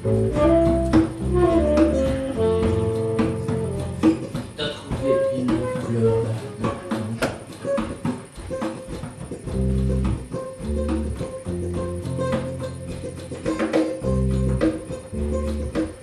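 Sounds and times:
deep bass notes: 0.0s - 7.3s, 9.4s - 13.4s, 14.0s - 16.0s
plucked guitar notes: 0.0s - 16.0s.

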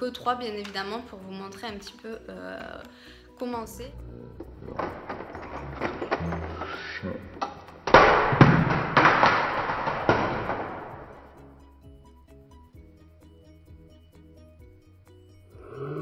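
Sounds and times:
background music: 0.0s - 16.0s
racks and palettes rattling: 4.0s - 11.4s.

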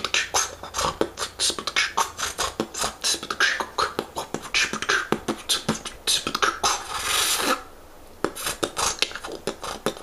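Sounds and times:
beatboxing hissing rasp: 0.0s - 10.0s
beatboxing mouth clicks: 0.0s - 10.0s.

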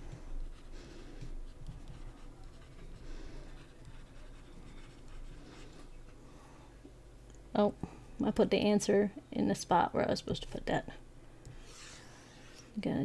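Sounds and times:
stylus scratching on tablet screen: 0.0s - 6.2s, 11.5s - 12.7s.

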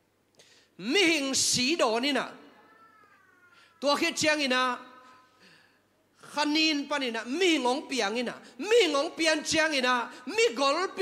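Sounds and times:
man preaching into a microphone: 0.8s - 2.7s, 3.8s - 5.3s, 6.2s - 11.0s.

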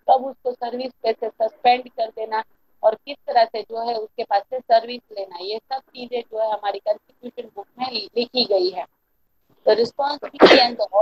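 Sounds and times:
person speaking: 0.0s - 8.9s, 9.5s - 11.0s.

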